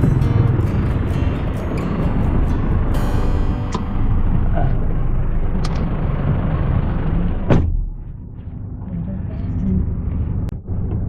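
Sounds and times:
low rumble of car cabin: 0.0 - 11.0
street traffic: 0.0 - 11.0
loud thump: 7.4 - 8.4.

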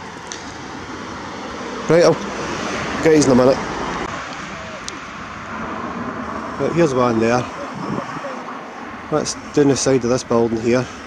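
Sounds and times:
distant traffic: 0.0 - 11.0
man speaking: 6.5 - 11.0.

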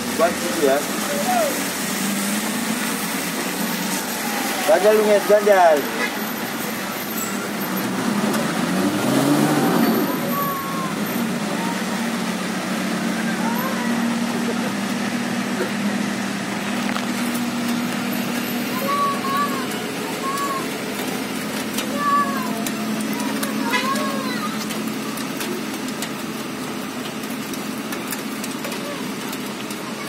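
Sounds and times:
engine revving: 0.0 - 26.4
rain: 0.0 - 30.0
steady engine hum: 0.0 - 30.0
tyres hissing on wet road: 0.0 - 30.0.

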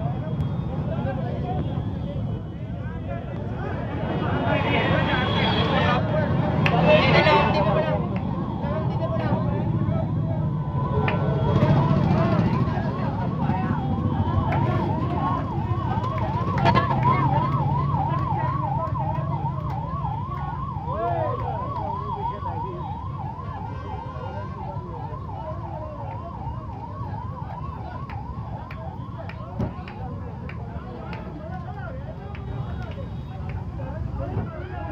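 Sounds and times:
emergency vehicle siren wailing: 0.0 - 34.9
street noise: 0.0 - 34.9.

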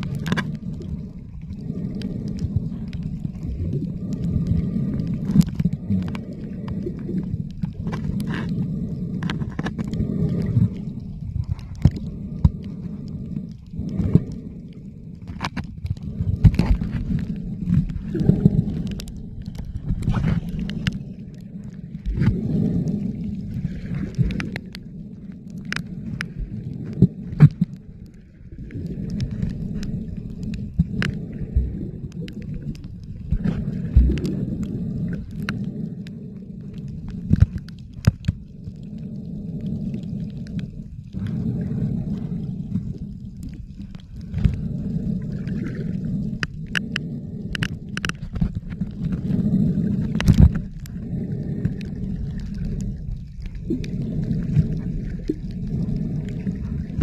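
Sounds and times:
faint clicks: 0.0 - 57.0
muffled underwater water rumble: 0.0 - 57.0.

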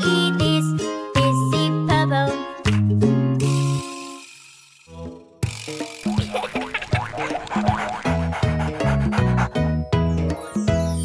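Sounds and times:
fast percussive strikes: 4.2 - 9.0
bouncing bass line: 5.4 - 9.5.

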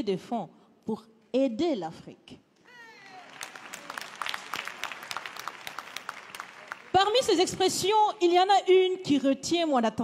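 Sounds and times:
audience applauding: 2.7 - 8.1.

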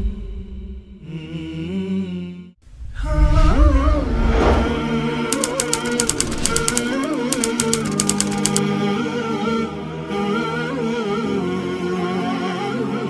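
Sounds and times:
wordless vocal music: 0.0 - 13.0
rapid typewriter-like clicking: 5.3 - 8.6.

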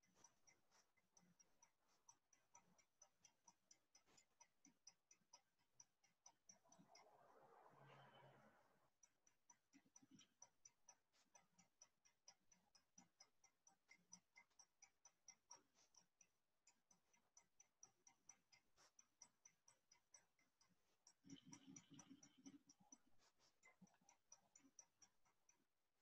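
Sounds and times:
faint rapid ticking: 0.0 - 26.0.

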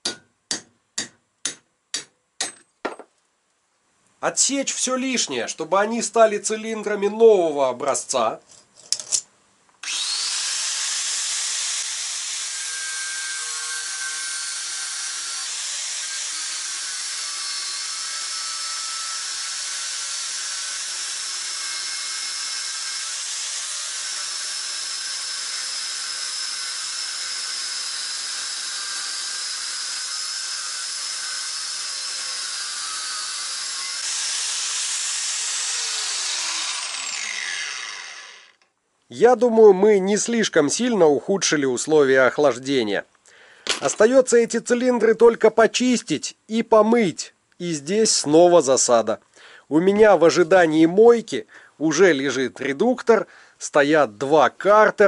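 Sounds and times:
angle grinder cutting metal: 9.8 - 38.7.

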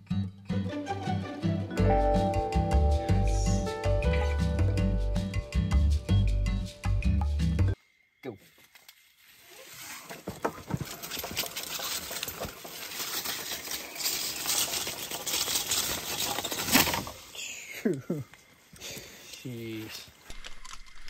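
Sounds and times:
background music: 0.0 - 7.8
footsteps on dry leaves: 8.5 - 17.0.

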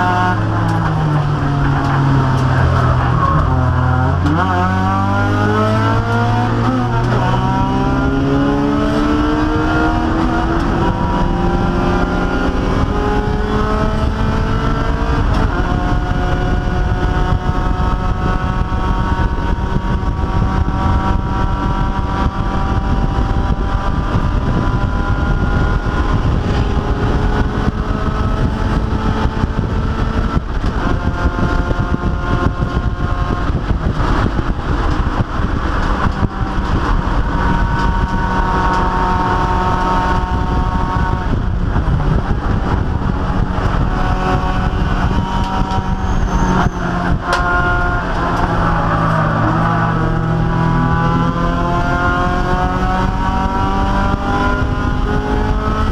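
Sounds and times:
race car engine: 0.0 - 55.9
road and wind noise: 0.0 - 55.9.

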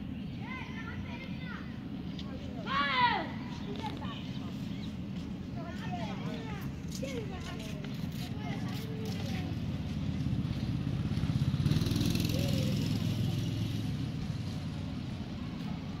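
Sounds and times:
vehicle passing by: 8.6 - 16.0.

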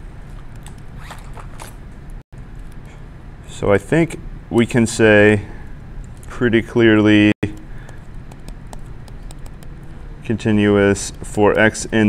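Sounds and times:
stylus tapping on tablet screen: 7.5 - 10.0.

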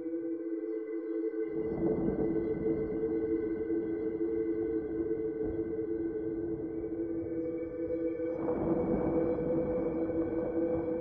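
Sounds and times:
dark ambient drone music: 0.0 - 11.0.

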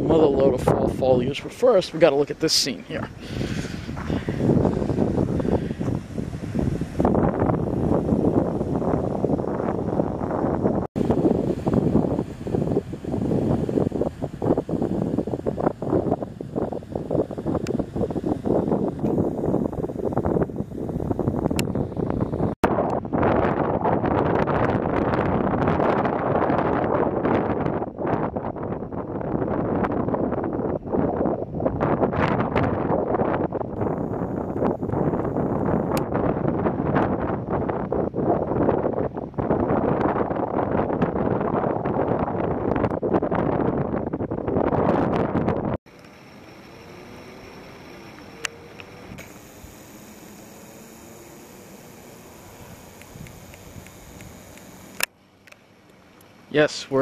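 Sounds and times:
wind buffeting microphone: 0.0 - 55.1.

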